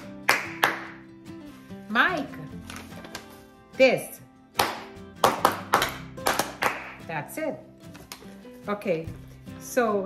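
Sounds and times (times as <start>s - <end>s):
hand claps: 0.0s - 1.2s, 4.5s - 7.1s
background music: 0.0s - 10.0s.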